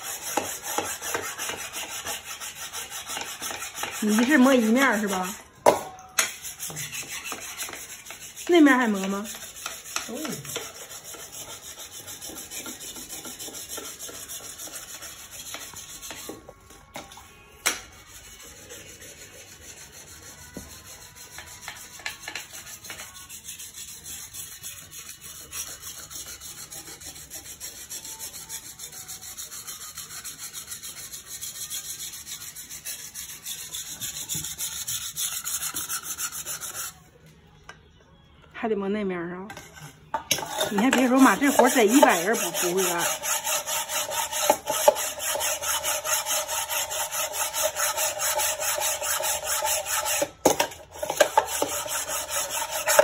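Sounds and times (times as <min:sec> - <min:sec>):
whetstone rubbing on blade: 0:06.2 - 0:16.3, 0:39.6 - 0:53.0.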